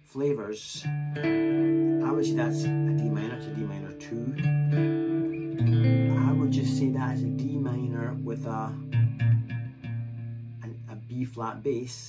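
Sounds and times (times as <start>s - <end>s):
electric guitar chord ringing: 0.9s - 11.1s.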